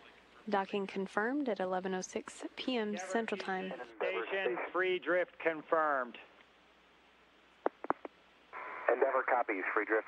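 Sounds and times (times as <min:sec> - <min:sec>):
radio channel hiss: 0:02.8 - 0:06.3, 0:07.6 - 0:10.0
short radio clicks: 0:07.6 - 0:08.2.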